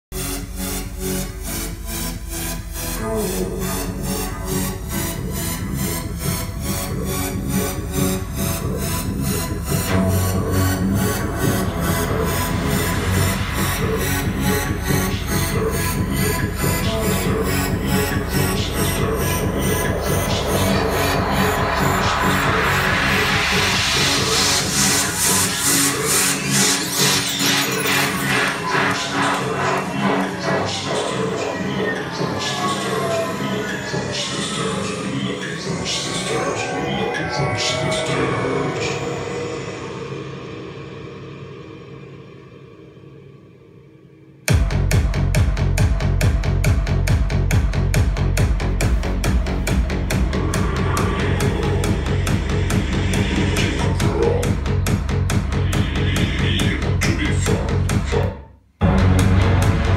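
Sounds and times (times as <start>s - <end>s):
music with bass line and beat: 0.0s - 36.5s, 44.5s - 59.9s.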